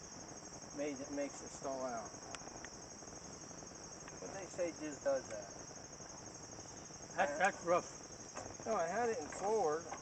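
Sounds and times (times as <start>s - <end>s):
high-pitched insect chirping: 0.0s - 10.0s.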